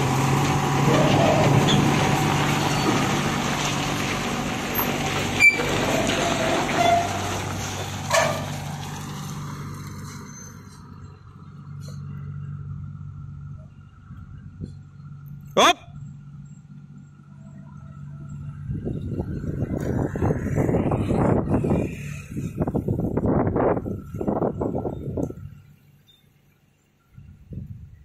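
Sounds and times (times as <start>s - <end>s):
diesel truck engine driving off: 0.0s - 26.5s.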